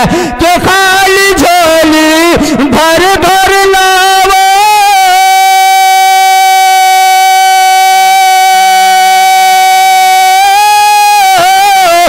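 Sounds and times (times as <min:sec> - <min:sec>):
man singing a long note: 0:00.0 - 0:12.0.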